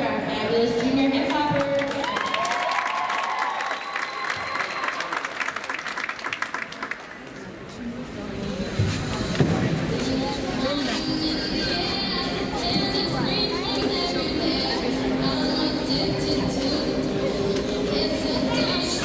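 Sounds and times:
audience cheering and applauding: 0:01.8 - 0:07.2.

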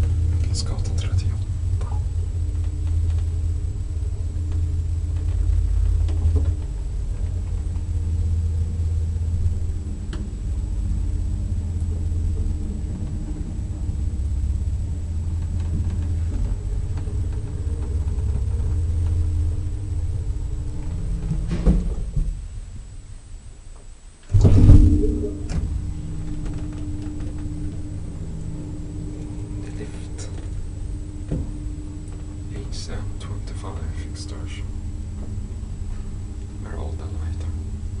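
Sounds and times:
drive hum: 0:00.0 - 0:38.0
elevator running rumble: 0:00.0 - 0:38.0.

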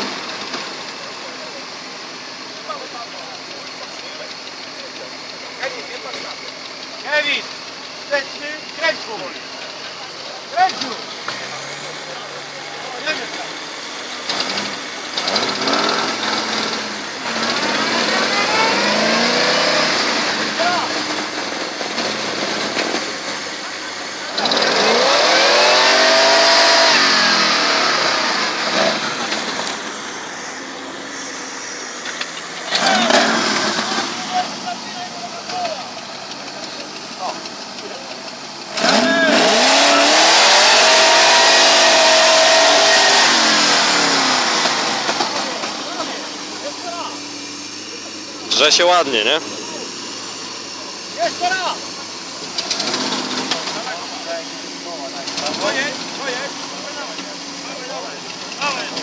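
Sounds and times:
off-road engines revving hard: 0:00.0 - 0:59.0.

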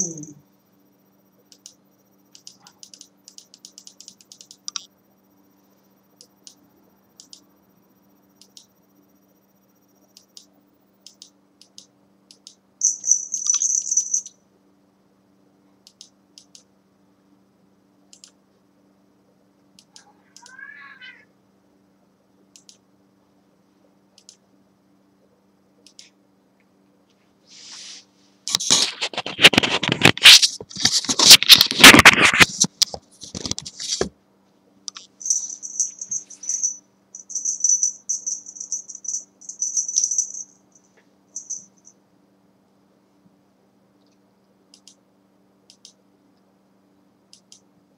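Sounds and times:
low steady hum: 0:00.0 - 0:47.9
cat toy jingling: 0:12.8 - 0:14.3, 0:35.2 - 0:40.6, 0:41.4 - 0:41.9
cat meowing: 0:20.0 - 0:21.3.

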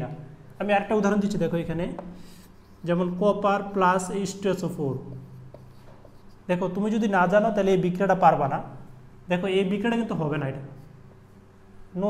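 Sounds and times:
man speaking: 0:00.0 - 0:02.0, 0:02.8 - 0:05.2, 0:06.5 - 0:10.8
marker writing on whiteboard: 0:00.6 - 0:07.4.

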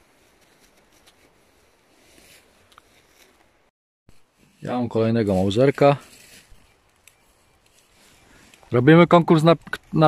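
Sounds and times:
soft rustles and ticks: 0:00.0 - 0:10.0.

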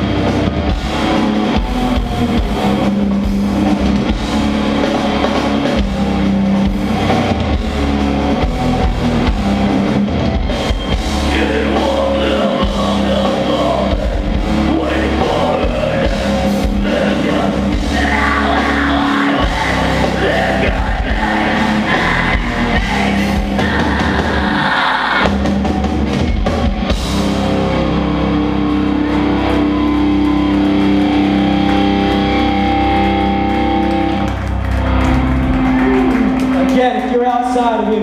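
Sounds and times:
drums and cymbals: 0:00.0 - 0:28.1
bass guitar: 0:00.0 - 0:38.0
distorted electric guitars: 0:00.0 - 0:38.0
shouted vocals: 0:10.4 - 0:25.4.

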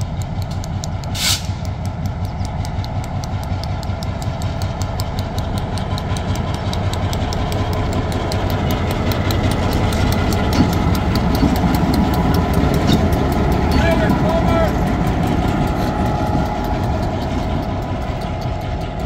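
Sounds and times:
diesel locomotive engine: 0:00.0 - 0:19.0.

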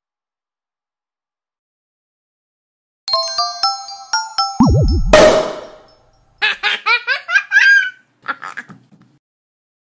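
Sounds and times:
logo jingle crash: 0:04.6 - 0:05.9
high-pitched giggling: 0:06.4 - 0:08.9.

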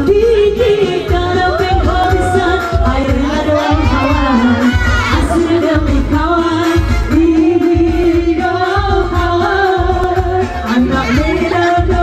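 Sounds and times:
pop backing music with bass beat: 0:00.0 - 0:12.0
women singing through pa: 0:00.0 - 0:12.0.

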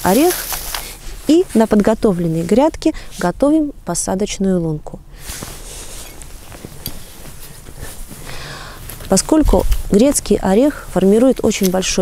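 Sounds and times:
hand rustling dry soil: 0:00.0 - 0:03.3
outdoor background hiss: 0:00.0 - 0:12.0.

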